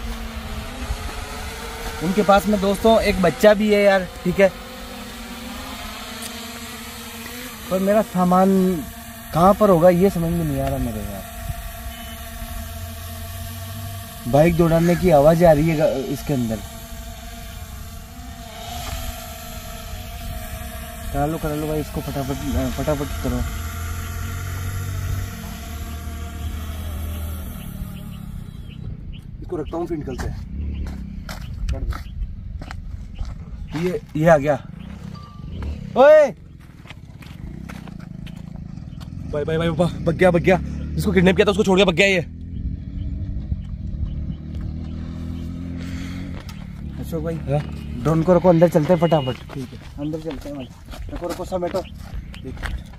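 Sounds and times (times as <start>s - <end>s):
drone propeller hum: 0.0s - 52.9s
wind rumbling on microphone: 27.3s - 38.1s, 42.5s - 45.2s.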